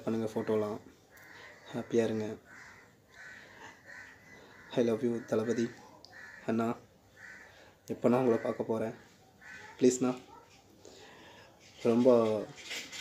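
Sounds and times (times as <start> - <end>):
man speaking: 4.7 - 6.9, 7.9 - 9.1, 11.8 - 12.6.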